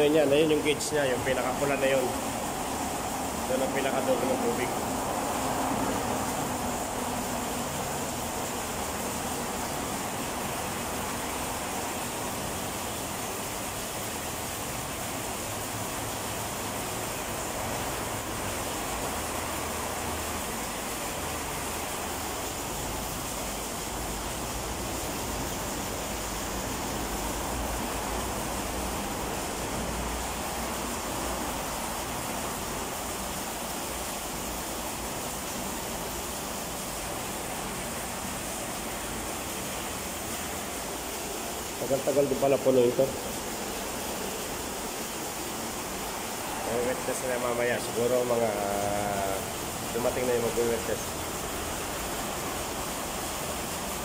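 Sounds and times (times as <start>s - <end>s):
water pouring into pit: 0.0s - 54.0s.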